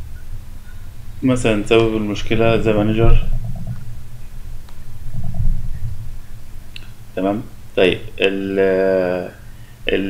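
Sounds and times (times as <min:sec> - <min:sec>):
low background rumble: 0:00.0 - 0:10.0
steady hum: 0:00.0 - 0:10.0.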